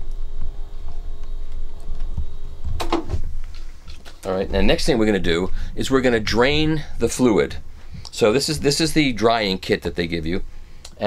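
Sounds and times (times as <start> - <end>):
click: 10.8 - 11.0.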